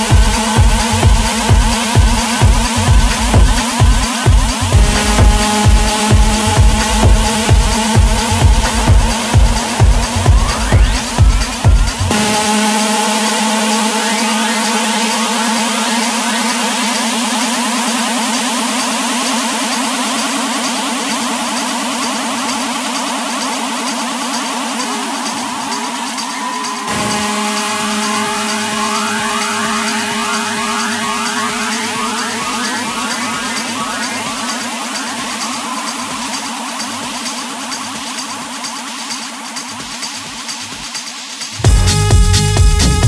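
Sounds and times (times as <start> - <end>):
buzzing synth tones: 0.0 - 17.0, 26.9 - 35.6
fast ticking hi-hat: 0.0 - 43.0.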